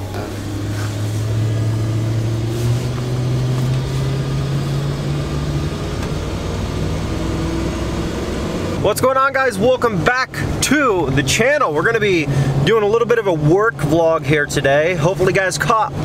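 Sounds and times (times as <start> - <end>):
truck engine and road noise: 0.0 - 16.0.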